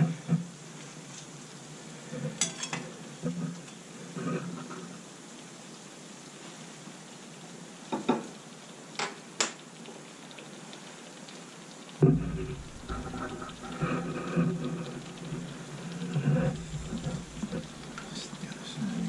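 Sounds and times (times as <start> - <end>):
oil sizzling: 0.0 - 19.0.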